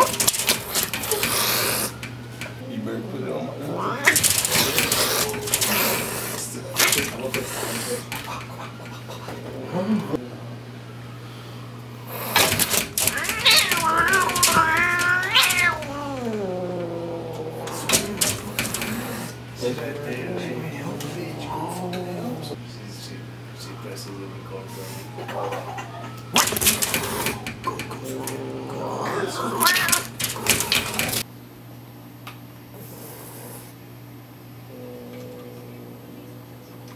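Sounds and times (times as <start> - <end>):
cat hissing: 0.0 - 2.1, 3.6 - 9.3, 12.1 - 22.6, 26.3 - 31.2
cat yowling: 3.7 - 8.0, 12.9 - 22.6, 25.1 - 31.2.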